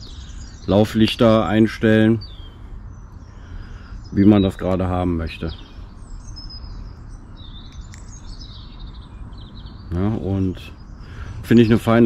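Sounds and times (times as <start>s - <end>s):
small songbirds chirping: 0.0s - 12.0s
steady low rumble: 0.0s - 12.0s.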